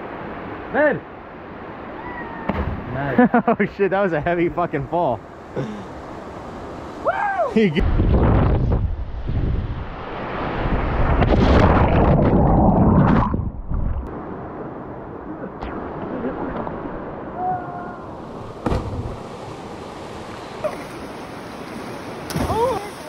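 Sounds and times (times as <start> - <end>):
fast river rushing: 14.2 - 23.0.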